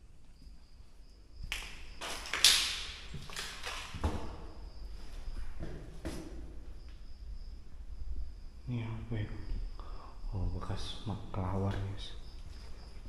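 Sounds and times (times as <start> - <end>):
cricket trill: 0.0 - 13.0.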